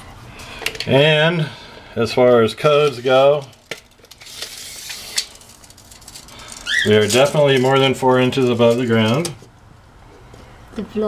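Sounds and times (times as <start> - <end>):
tape measure blade rasping: 4.2 - 5.5.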